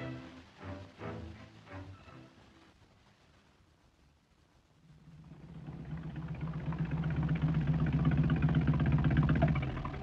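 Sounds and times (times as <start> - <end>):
car engine pulsing: 5.4 - 10.0.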